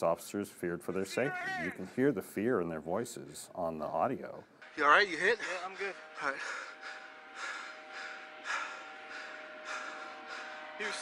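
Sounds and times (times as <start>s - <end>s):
heavy rapid breathing: 5.3s - 11.0s.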